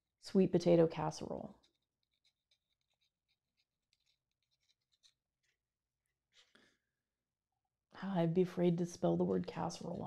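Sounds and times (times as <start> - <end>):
pen nib scratching on paper: 1.2 - 5.6.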